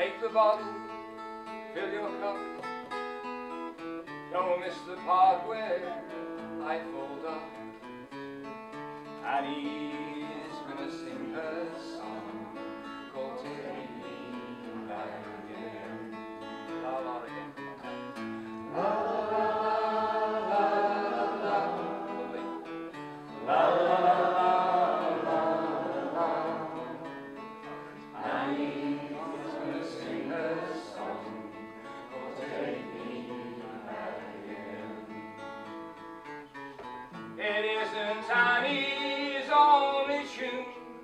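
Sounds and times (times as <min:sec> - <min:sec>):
strummed acoustic guitar: 0:00.0 - 0:41.0.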